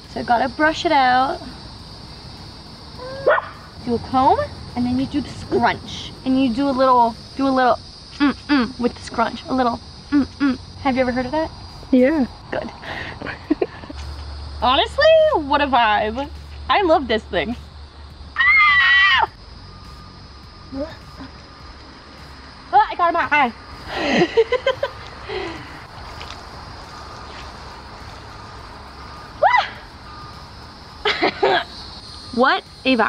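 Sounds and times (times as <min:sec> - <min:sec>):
insects hissing: 0:00.0 - 0:33.0
dog yipping: 0:03.0 - 0:03.7.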